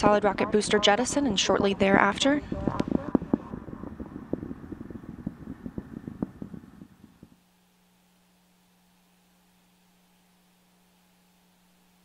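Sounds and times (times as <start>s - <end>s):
faint steady hum: 0.0s - 12.0s
distant rocket rumble and crackle: 1.4s - 7.4s.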